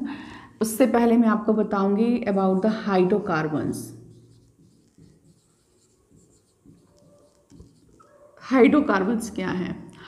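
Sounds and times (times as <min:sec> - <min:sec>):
marker pen scraping on whiteboard: 0:02.2 - 0:08.4.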